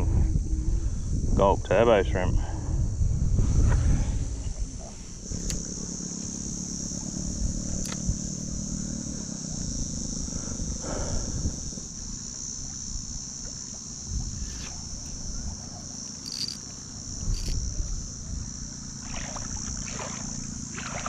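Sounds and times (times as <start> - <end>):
wind buffeting microphone: 0.0 - 13.4, 14.0 - 16.5
high-pitched insect drone: 0.0 - 21.0.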